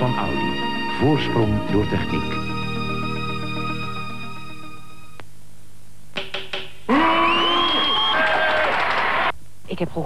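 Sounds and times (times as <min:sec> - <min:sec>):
baton tapping music stand: 0:06.2 - 0:06.8.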